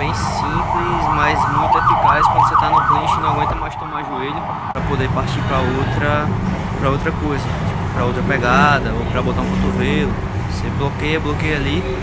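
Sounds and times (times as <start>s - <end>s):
emergency siren yelping: 0.0s - 4.9s
low traffic rumble: 0.0s - 12.0s.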